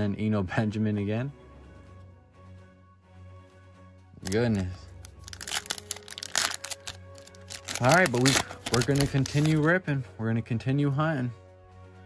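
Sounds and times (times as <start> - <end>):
foil pack crinkling: 4.2 - 9.7
foil ripping: 5.2 - 9.7.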